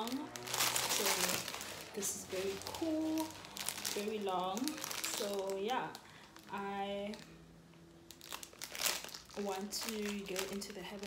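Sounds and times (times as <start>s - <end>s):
plastic packaging rustling: 0.0s - 7.3s, 8.1s - 11.0s.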